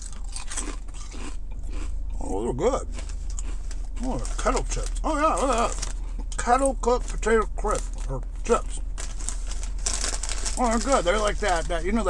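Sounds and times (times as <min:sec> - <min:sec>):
low steady hum: 0:00.0 - 0:12.0
person crunching chips: 0:00.0 - 0:12.0.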